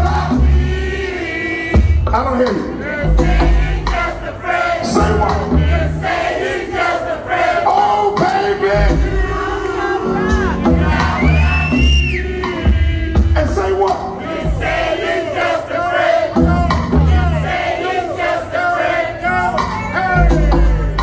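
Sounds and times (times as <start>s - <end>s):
crowd shouting and cheering: 0.0s - 21.0s
hip hop beat with heavy bass: 1.8s - 6.3s, 8.2s - 15.4s, 16.2s - 18.5s, 19.3s - 21.0s.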